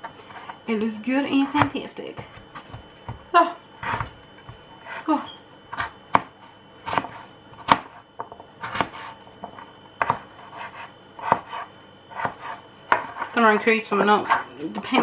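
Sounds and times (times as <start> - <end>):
knife chopping on cutting board: 1.4 - 15.0.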